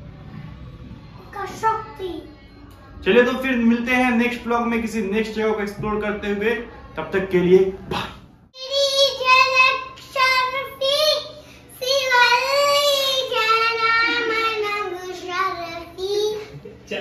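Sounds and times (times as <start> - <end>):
child singing unaccompanied: 8.6 - 16.5.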